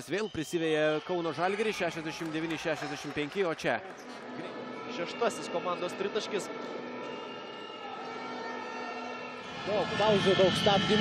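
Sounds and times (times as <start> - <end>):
arena crowd background: 0.0 - 11.0.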